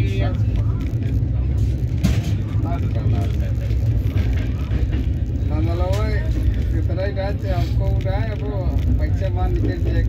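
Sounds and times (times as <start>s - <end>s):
train wheels rumbling on rails: 0.0s - 10.0s
wheel clack on rail joint: 4.0s - 6.8s.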